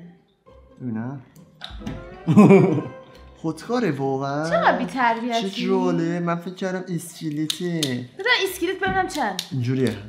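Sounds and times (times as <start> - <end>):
people talking: 3.5 - 10.0.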